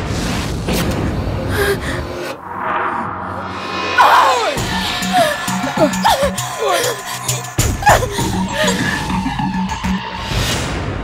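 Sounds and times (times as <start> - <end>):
dramatic low rumble: 1.0 - 9.9
person gasping: 1.5 - 2.2, 4.8 - 9.1.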